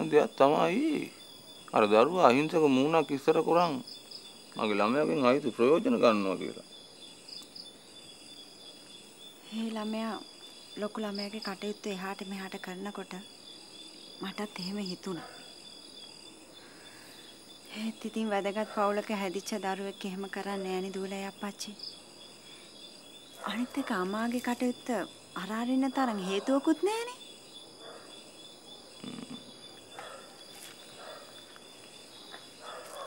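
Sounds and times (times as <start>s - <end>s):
night insects chirring: 0.0s - 33.0s.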